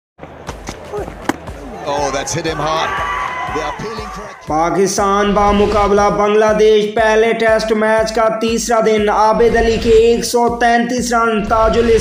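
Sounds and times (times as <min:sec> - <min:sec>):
sharp knocks: 0:00.5 - 0:01.6.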